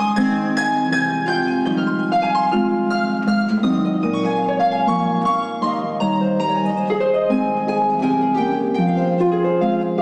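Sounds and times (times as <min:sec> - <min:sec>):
harp plucked notes: 0:00.0 - 0:10.0.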